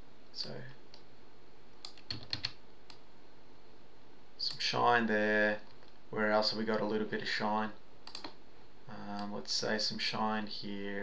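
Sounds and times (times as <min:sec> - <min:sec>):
computer keys and mouse clicks: 0:01.8 - 0:03.0, 0:05.6 - 0:06.0, 0:08.0 - 0:08.4.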